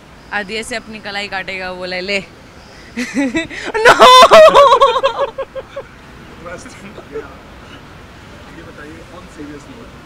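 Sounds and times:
woman laughing loudly: 0:03.0 - 0:05.8.

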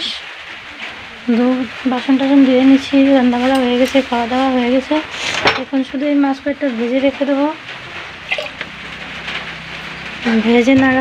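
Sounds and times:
sizzle of frying: 0:00.0 - 0:11.0.

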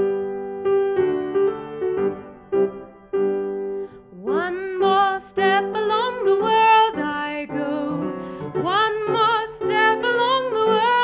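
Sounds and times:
piano accompaniment: 0:00.0 - 0:11.0
woman singing: 0:04.1 - 0:11.0.

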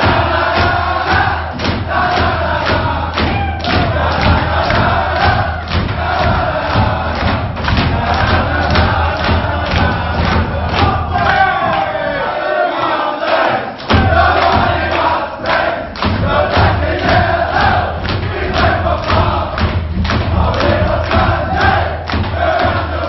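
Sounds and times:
clapped beat: 0:00.0 - 0:23.0
men singing loudly together: 0:00.0 - 0:23.0.

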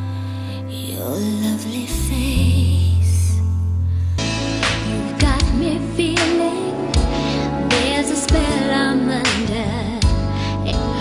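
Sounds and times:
low keyboard chords: 0:00.0 - 0:11.0
woman singing: 0:00.7 - 0:03.4, 0:04.6 - 0:11.0.

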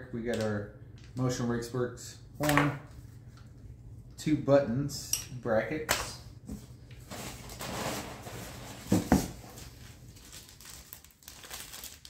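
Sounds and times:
plastic bag crinkling: 0:07.1 - 0:12.0.

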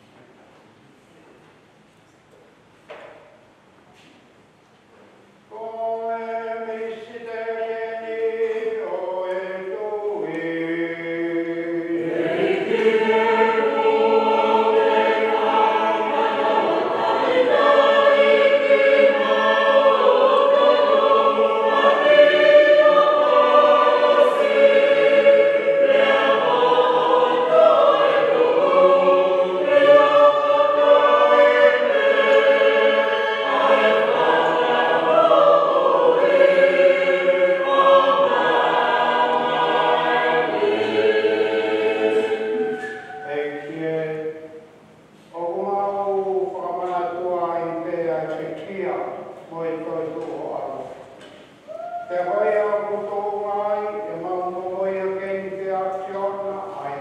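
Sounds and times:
choir singing a hymn: 0:05.5 - 0:44.7, 0:45.4 - 0:57.0.

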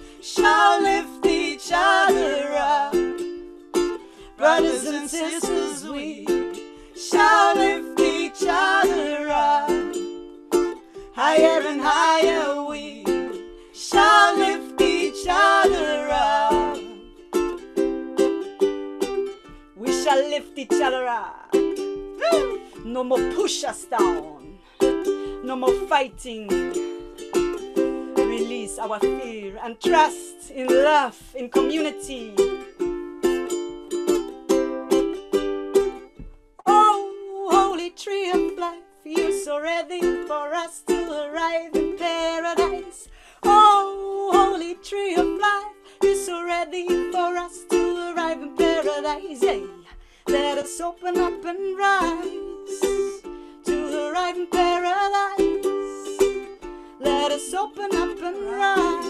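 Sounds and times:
woman singing: 0:00.0 - 0:03.2, 0:04.2 - 0:17.2, 0:19.6 - 0:26.9, 0:27.8 - 0:32.7, 0:36.6 - 0:59.0
ukulele strumming: 0:00.0 - 0:59.0.

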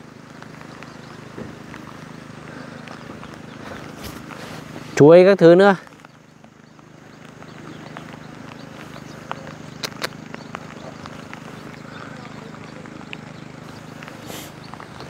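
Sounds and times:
rain: 0:00.0 - 0:15.0
small irregular taps: 0:05.9 - 0:15.0.

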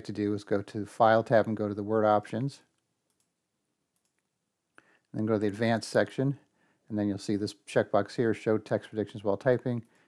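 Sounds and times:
faint computer mouse clicks: 0:02.7 - 0:03.4.

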